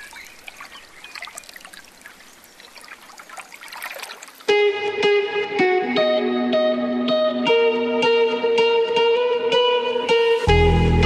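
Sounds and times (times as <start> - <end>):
water trickling and dripping: 0.0 - 4.7.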